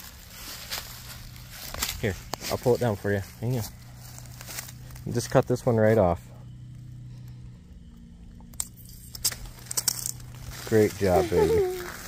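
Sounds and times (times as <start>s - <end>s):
dry leaves crackling: 0.0s - 8.0s, 8.8s - 12.0s
steady low hum: 0.0s - 12.0s.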